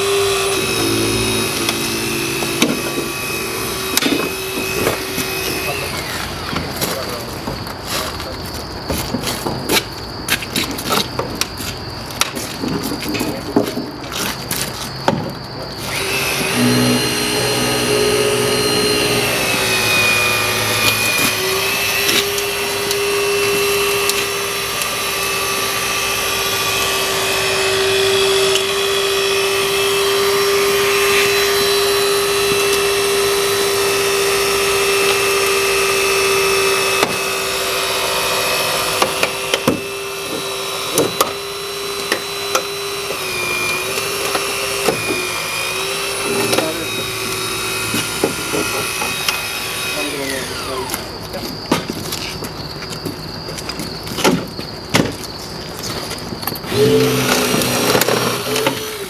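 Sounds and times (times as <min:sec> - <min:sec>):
hydraulic ram motor whine: 0:00.0 - 0:07.7, 0:15.6 - 0:55.2, 0:55.8 - 0:59.0.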